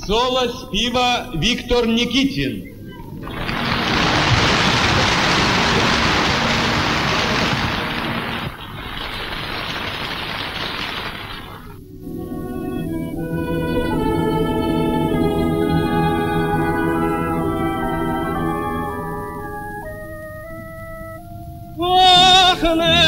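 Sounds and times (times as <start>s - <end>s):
audience applauding: 3.0s - 11.8s.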